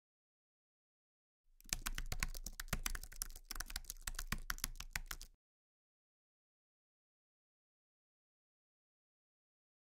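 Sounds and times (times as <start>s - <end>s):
keyboard typing: 1.6s - 5.3s.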